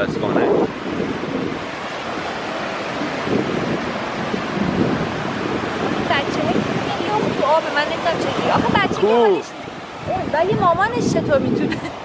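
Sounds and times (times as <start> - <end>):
surf breaking on beach: 0.0 - 12.0
wind buffeting microphone: 0.0 - 12.0.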